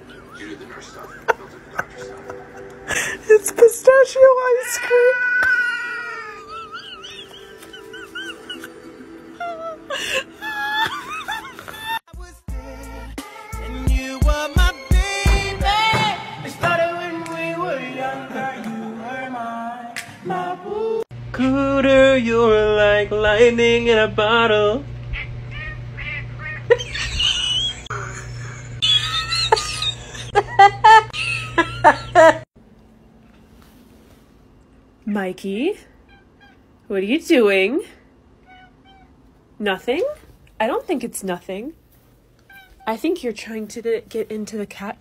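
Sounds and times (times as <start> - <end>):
background music: 0.4 - 4.4, 5.9 - 21.0
cat mewing: 4.6 - 6.6, 25.1 - 27.7, 36.0 - 36.7, 38.4 - 39.2, 42.4 - 42.9.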